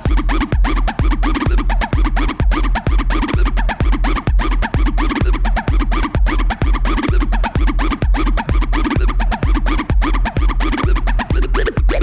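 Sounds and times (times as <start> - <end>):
electro house dance music: 0.0 - 12.0
heavy bass beat: 0.0 - 12.0.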